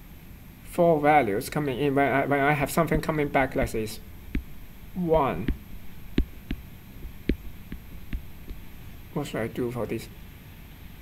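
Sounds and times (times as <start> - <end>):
low hum: 2.6 - 9.2
pen tapping on writing surface: 2.8 - 3.8, 4.4 - 4.6, 5.4 - 8.7.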